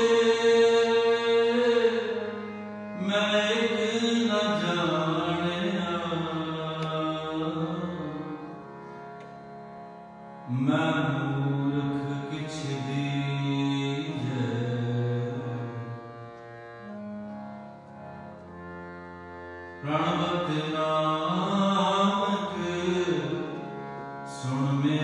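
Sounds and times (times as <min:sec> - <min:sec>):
devotional singing with instruments: 0:00.0 - 0:25.0.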